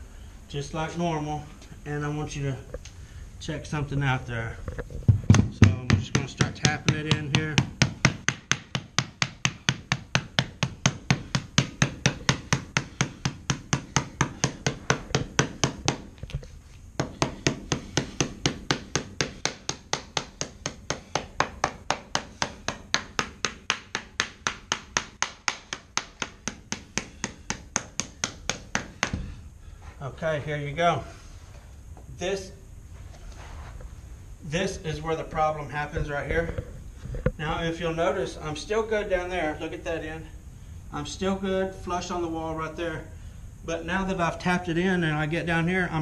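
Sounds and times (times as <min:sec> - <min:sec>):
rubber mallet tapping: 0:17.0 - 0:29.2.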